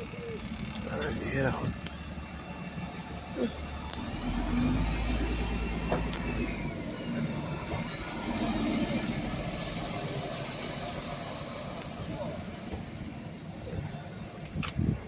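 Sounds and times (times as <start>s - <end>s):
bus whine: 0.0s - 15.0s
diesel bus engine rumble: 0.0s - 15.0s
road noise: 0.0s - 15.0s.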